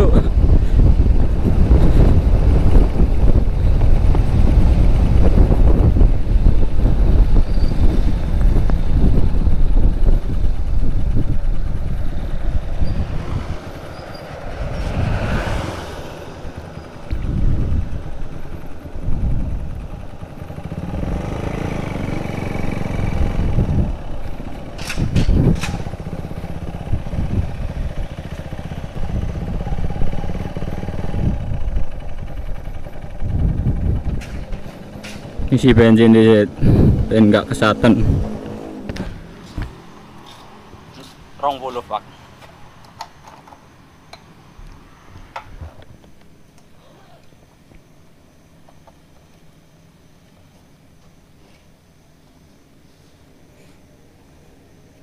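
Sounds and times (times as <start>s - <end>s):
wind noise on microphone: 0.0s - 39.7s, 45.4s - 46.0s
motorcycle engine: 0.0s - 41.0s.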